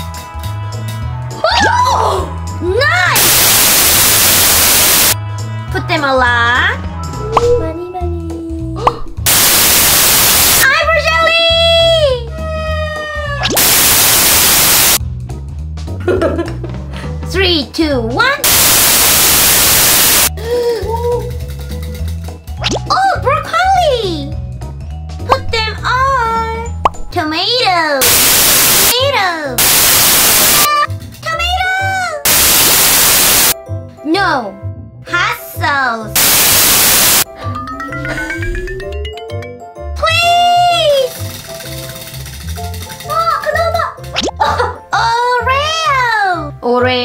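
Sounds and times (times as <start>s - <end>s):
light background music: 0.0s - 3.2s, 5.2s - 9.2s, 10.6s - 13.6s, 15.0s - 18.4s, 20.3s - 28.0s, 30.7s - 32.2s, 33.6s - 36.2s, 37.3s - 47.0s
bursts of static hiss: 3.2s - 5.2s, 9.2s - 10.6s, 13.5s - 15.0s, 18.4s - 20.3s, 28.0s - 29.0s, 29.6s - 30.7s, 32.3s - 33.6s, 36.2s - 37.3s.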